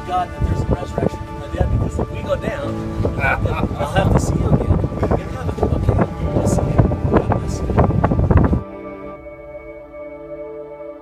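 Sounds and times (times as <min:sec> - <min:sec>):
man talking: 0:00.0 - 0:08.1
wind noise on microphone: 0:00.0 - 0:09.7
soft ambient music: 0:00.0 - 0:11.0.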